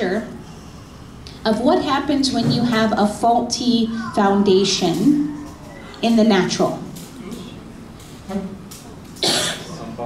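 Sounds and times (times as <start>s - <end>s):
person coughing: 9.2s - 9.8s.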